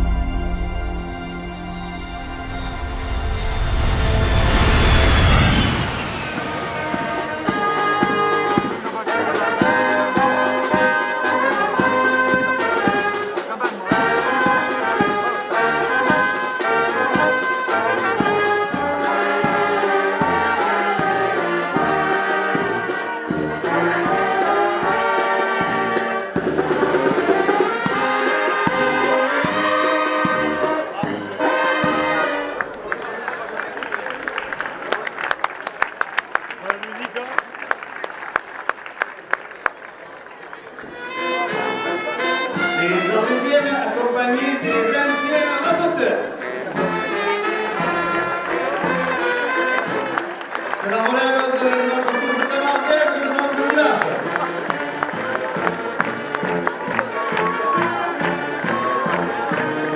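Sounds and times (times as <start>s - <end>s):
loud low falling sweep: 0.0s - 8.7s
brass band playing: 0.0s - 33.0s, 40.8s - 59.9s.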